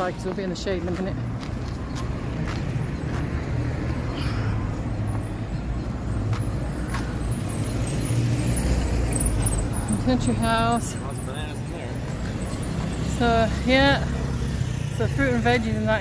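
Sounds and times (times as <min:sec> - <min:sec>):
cars driving past: 0:00.0 - 0:16.0.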